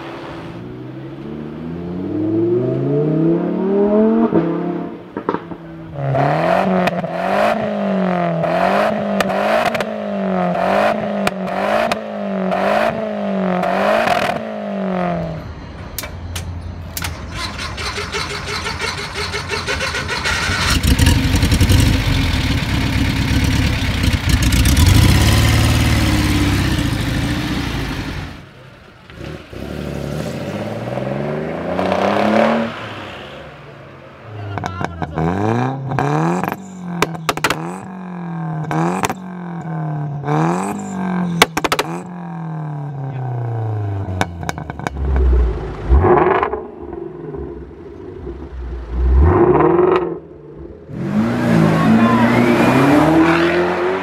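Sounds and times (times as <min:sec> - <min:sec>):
sports car engine accelerating: 0:00.1 - 0:15.4, 0:20.4 - 0:28.4, 0:29.1 - 0:33.5, 0:34.5 - 0:54.0
engine revving up and down: 0:00.6 - 0:15.4, 0:17.4 - 0:28.4, 0:29.2 - 0:33.3, 0:37.4 - 0:54.0
car pulling away: 0:16.8 - 0:54.0
rough loud car engine: 0:16.9 - 0:54.0.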